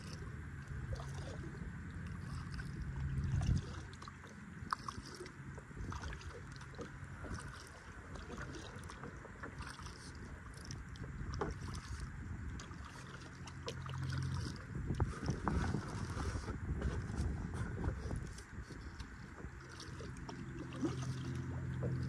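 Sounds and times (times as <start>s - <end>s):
low rumble: 0.0s - 22.0s
paddle splashing and dripping: 0.0s - 22.0s
water lapping at hull: 0.0s - 22.0s.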